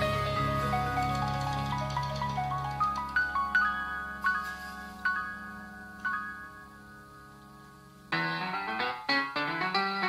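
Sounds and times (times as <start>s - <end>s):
rising run of melodic notes: 0.0s - 10.0s.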